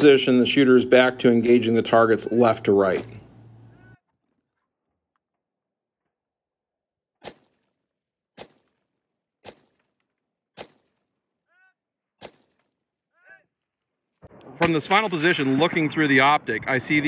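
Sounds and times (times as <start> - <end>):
rifle shots: 7.2 - 7.7, 8.4 - 8.8, 9.4 - 9.9, 10.6 - 11.0, 12.2 - 12.7.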